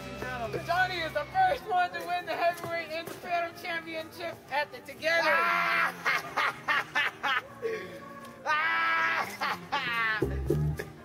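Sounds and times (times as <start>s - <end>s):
young people laughing: 5.2s - 7.6s, 8.5s - 11.0s
young people yelling: 8.4s - 10.2s.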